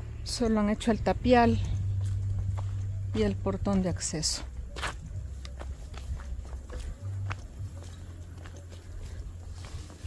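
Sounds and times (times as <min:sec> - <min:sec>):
footsteps on dirt path: 0:00.0 - 0:10.0
low steady rumble: 0:00.0 - 0:10.0.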